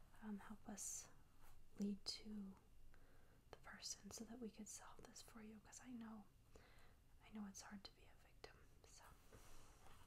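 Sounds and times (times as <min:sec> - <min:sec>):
faint whispering: 0:00.0 - 0:02.7, 0:03.5 - 0:06.3, 0:07.2 - 0:10.0.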